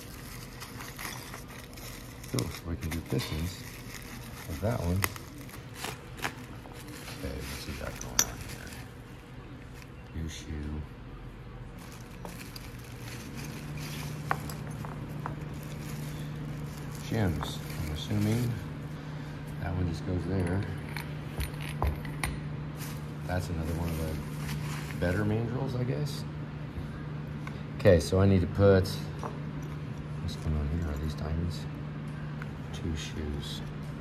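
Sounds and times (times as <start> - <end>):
small metal parts clinking: 0.0 - 5.2, 7.0 - 8.9, 11.8 - 18.6, 20.2 - 22.4
bubble wrap crinkling: 0.0 - 10.0, 11.8 - 18.8, 22.8 - 25.3
metal parts clinking on steel bench: 7.5 - 8.8, 20.3 - 22.4.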